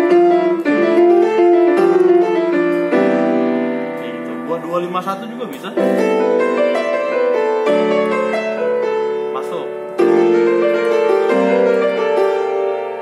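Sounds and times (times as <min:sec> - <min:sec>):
jazz-gospel piano playing: 0:00.0 - 0:13.0.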